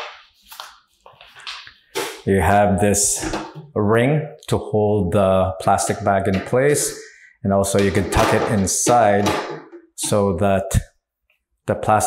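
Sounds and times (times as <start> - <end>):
paper rustling: 0.0 - 2.3.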